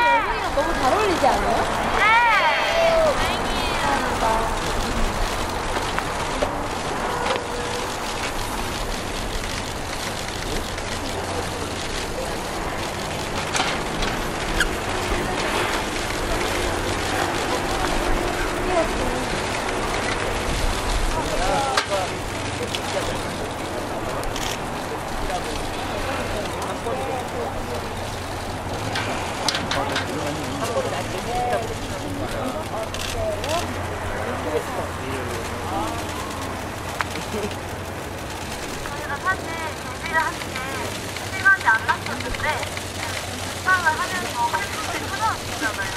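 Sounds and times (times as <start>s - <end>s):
faint scattered voices: 0.0s - 45.9s
low outdoor rumble: 0.0s - 45.9s.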